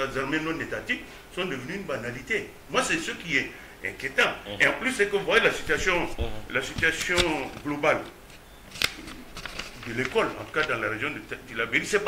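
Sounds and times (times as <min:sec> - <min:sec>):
person speaking: 0:00.0 - 0:08.3, 0:09.5 - 0:12.0
faint room noise: 0:00.0 - 0:12.0.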